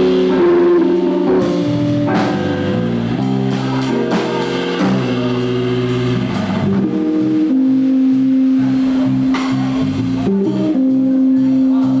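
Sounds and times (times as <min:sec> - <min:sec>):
jazz quartet playing: 0:00.0 - 0:12.0.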